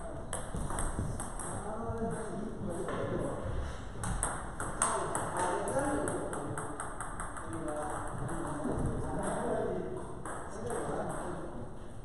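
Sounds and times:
table tennis ball bouncing: 0:00.0 - 0:03.4, 0:04.0 - 0:11.5
people talking: 0:01.2 - 0:03.6, 0:04.6 - 0:06.8, 0:07.4 - 0:11.7.

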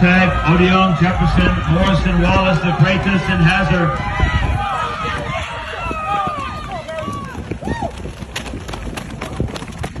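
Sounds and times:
spectators shouting and cheering: 0:00.0 - 0:08.5.

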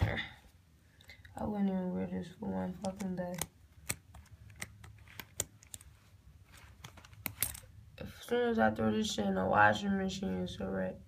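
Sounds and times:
fabric rustling: 0:05.8 - 0:07.6.

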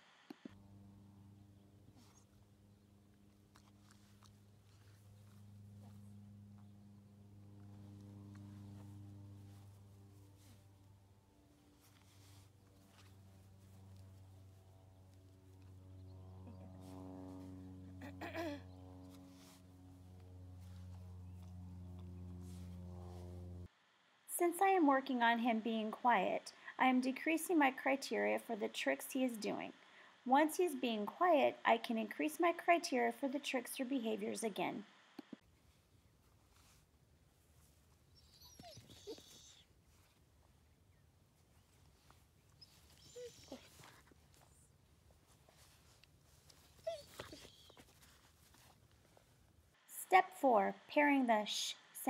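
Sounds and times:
steady low hum: 0:00.0 - 0:52.0
dog whimpering: 0:38.1 - 0:39.7, 0:42.6 - 0:43.9, 0:46.7 - 0:48.0.

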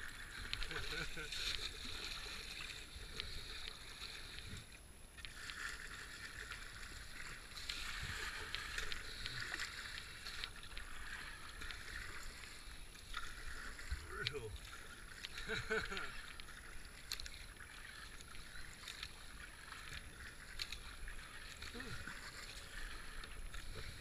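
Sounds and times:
paddle splashing in water: 0:00.0 - 0:24.0
water rushing along hull: 0:00.0 - 0:24.0.

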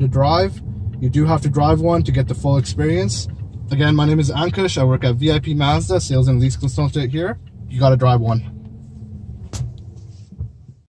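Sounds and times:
car cabin rumble: 0:00.0 - 0:10.9
soft thump: 0:09.4 - 0:10.8.

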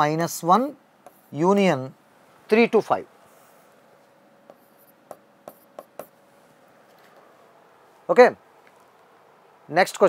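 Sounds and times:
marker scratching on whiteboard: 0:01.0 - 0:01.5, 0:03.3 - 0:06.2
marker tip tapping whiteboard: 0:04.5 - 0:06.2.

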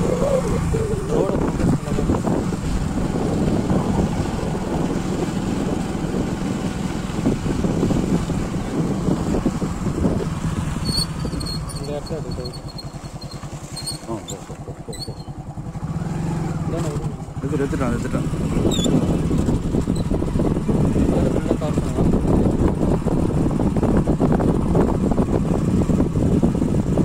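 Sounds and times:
motorcycle engine running: 0:00.0 - 0:27.0
wind rumble on microphone: 0:00.0 - 0:27.0.

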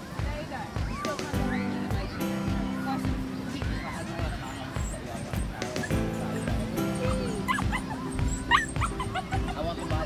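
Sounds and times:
background music: 0:00.0 - 0:10.0
voices: 0:00.0 - 0:10.0
small dog yipping: 0:03.5 - 0:10.0.

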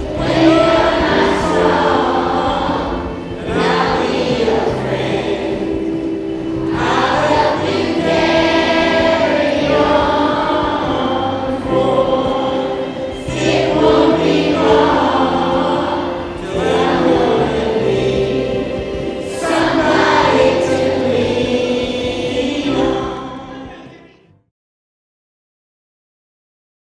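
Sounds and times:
choir singing held notes: 0:00.0 - 0:24.2
low accompaniment: 0:00.0 - 0:24.3.

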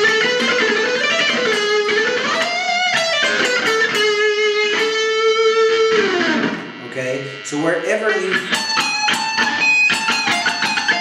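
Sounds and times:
electric guitar lead lick: 0:00.0 - 0:11.0.

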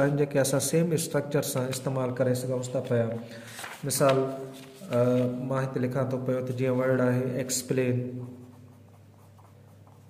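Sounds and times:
pen scratching on paper: 0:08.2 - 0:10.0.

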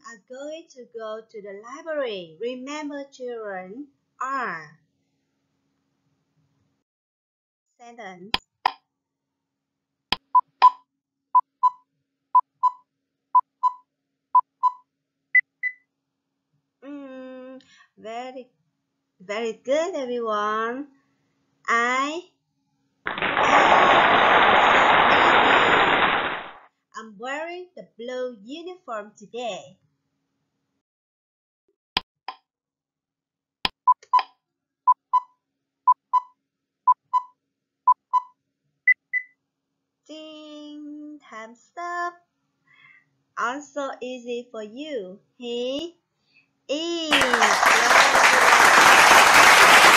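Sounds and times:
short countdown beeps: 0:11.4 - 0:14.8, 0:34.9 - 0:35.3, 0:35.9 - 0:36.3, 0:36.9 - 0:38.3.

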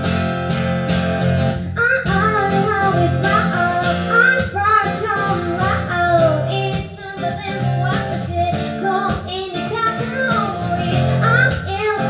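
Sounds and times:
acoustic guitar strumming: 0:00.0 - 0:12.0
woman singing: 0:01.6 - 0:12.0.

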